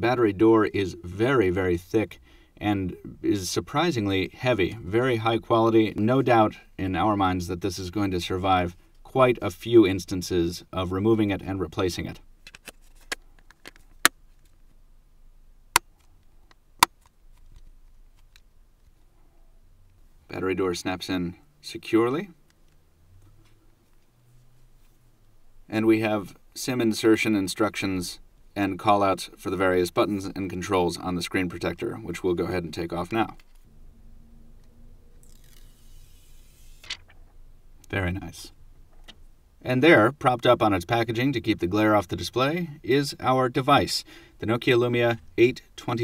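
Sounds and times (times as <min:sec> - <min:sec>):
plastic film peeling hiss: 0:35.2 - 0:37.0.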